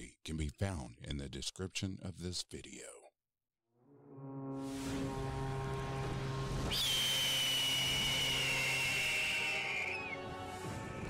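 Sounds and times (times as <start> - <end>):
low music drone: 3.8 - 11.0
rushing noise: 4.5 - 9.7
high whistling screech: 6.6 - 10.2.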